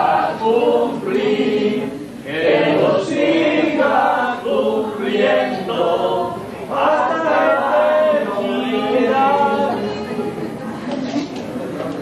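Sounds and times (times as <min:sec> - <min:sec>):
group singing a hymn: 0:00.0 - 0:10.4.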